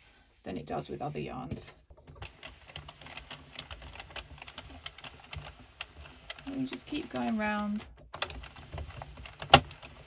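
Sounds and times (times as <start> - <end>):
knitting machine needles clicking: 2.2 - 10.0.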